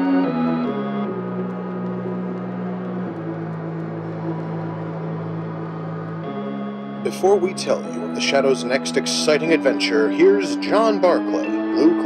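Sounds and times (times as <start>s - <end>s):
organ sustained chord: 0.0s - 12.0s.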